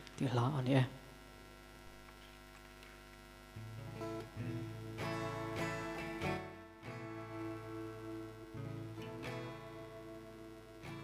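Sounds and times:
electrical hum: 0:00.0 - 0:11.0
acoustic guitar picking: 0:03.6 - 0:11.0.

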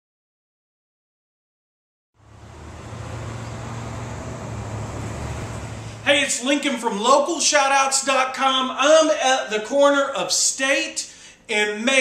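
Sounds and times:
low vehicle rumble with hiss: 0:02.2 - 0:06.1.

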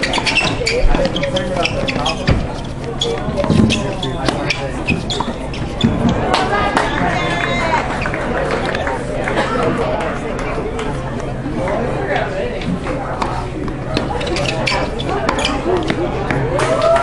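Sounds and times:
voices talking: 0:00.0 - 0:17.0.

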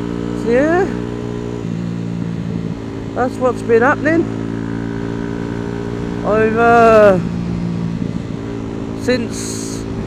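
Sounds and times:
motorcycle engine running: 0:00.0 - 0:10.0
road noise: 0:00.0 - 0:10.0.

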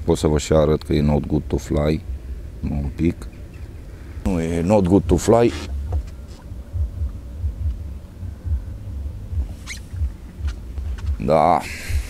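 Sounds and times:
wind buffeting microphone: 0:00.4 - 0:12.0.

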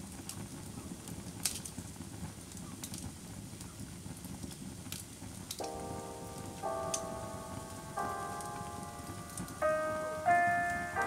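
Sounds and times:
wood fire crackling: 0:00.0 - 0:11.0
soft jazz keyboard chords: 0:05.6 - 0:11.0.

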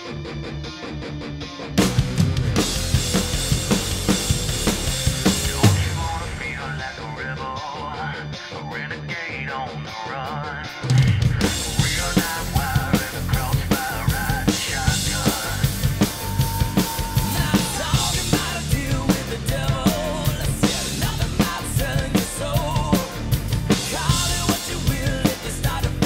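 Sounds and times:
rock drum kit playing: 0:00.0 - 0:08.6, 0:10.6 - 0:26.0
rock band recording: 0:00.0 - 0:26.0.

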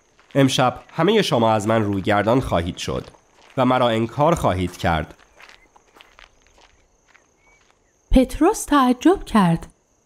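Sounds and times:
soft footsteps of people walking: 0:00.0 - 0:08.1.

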